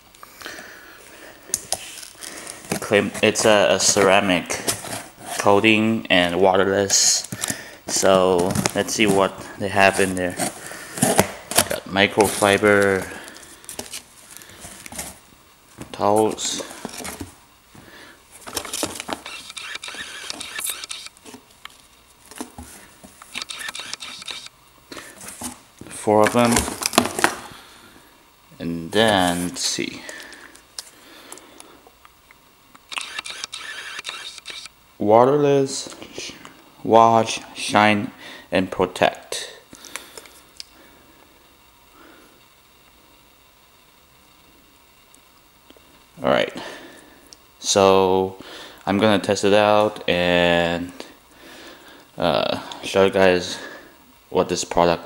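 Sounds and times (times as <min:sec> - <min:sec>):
plastic spray bottle handling: 0:01.6 - 0:05.5.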